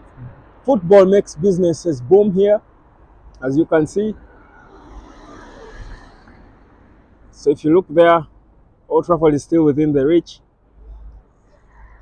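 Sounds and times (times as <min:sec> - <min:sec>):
van driving past: 0:03.1 - 0:08.8.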